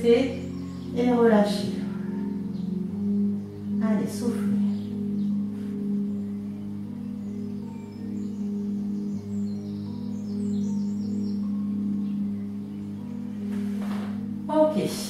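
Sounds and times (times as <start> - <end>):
calm music with low held notes: 0.0 - 15.0.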